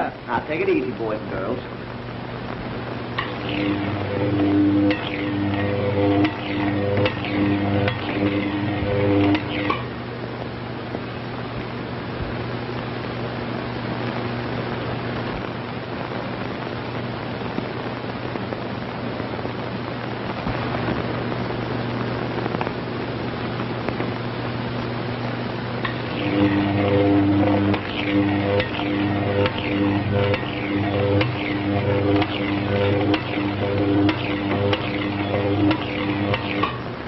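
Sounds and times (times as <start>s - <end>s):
low hum: 0.0s - 12.9s, 20.5s - 37.0s
pulsing pitched electrical buzz: 0.0s - 13.1s, 20.3s - 37.0s.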